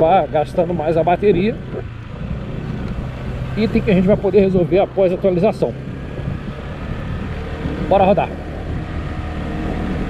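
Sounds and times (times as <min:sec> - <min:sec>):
scooter engine rumbling on cobblestones: 0:00.0 - 0:10.0.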